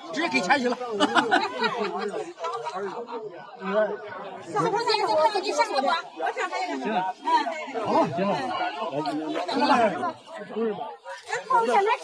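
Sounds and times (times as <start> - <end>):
group of people chattering: 0.0 - 12.0.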